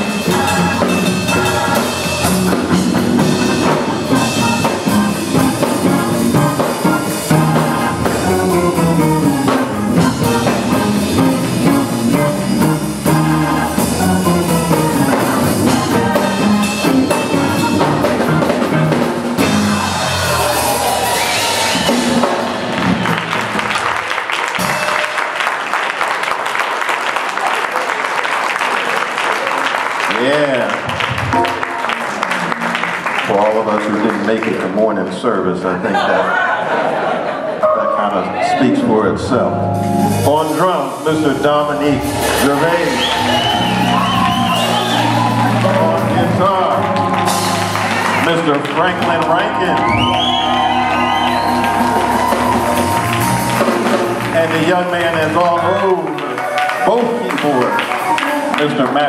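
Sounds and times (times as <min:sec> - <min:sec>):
gospel band playing: 0:00.0 - 0:59.0
audience applause: 0:19.5 - 0:37.4, 0:42.2 - 0:59.0.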